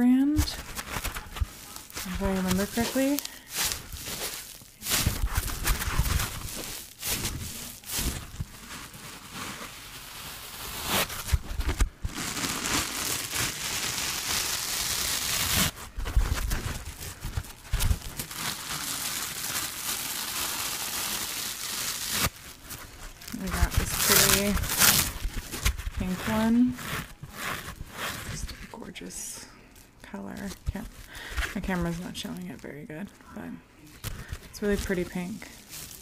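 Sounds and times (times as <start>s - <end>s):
foam sponges rustling: 0.0s - 33.1s, 33.9s - 36.0s.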